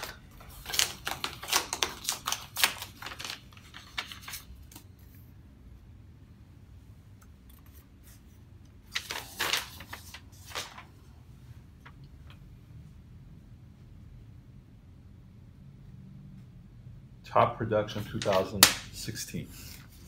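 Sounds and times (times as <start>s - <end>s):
paper rustling and clicks: 0.0s - 4.9s, 8.9s - 10.9s, 18.0s - 18.9s.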